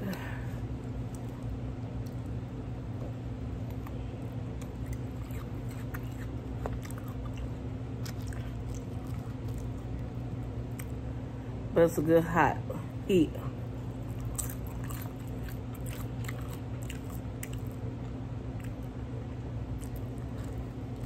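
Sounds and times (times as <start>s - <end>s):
person chewing food: 0.0s - 11.2s, 13.5s - 21.0s.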